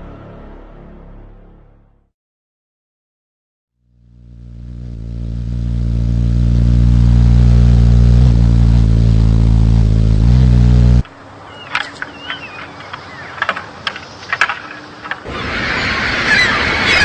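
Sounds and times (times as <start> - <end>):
deep droning hum: 3.9 - 11.0.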